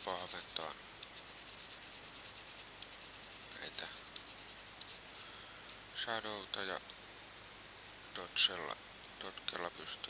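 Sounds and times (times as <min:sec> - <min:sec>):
computer mouse ticking and scratching: 0:00.0 - 0:05.2
steady low hiss: 0:00.0 - 0:10.0.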